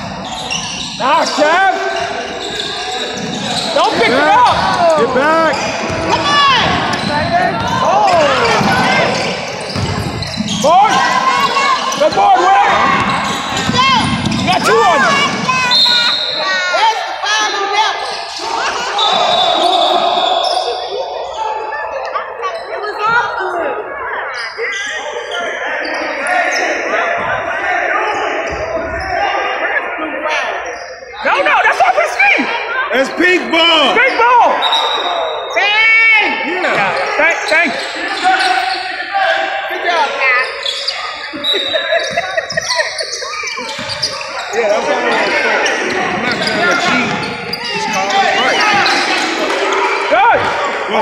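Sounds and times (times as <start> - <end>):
sneakers squeaking: 0.0 - 29.6, 30.5 - 32.2, 33.1 - 35.9, 36.7 - 50.9
voices calling out: 0.0 - 51.0
basketball bouncing on floor: 9.7 - 10.2
referee's whistle: 15.6 - 16.6, 18.8 - 20.8, 34.5 - 35.6.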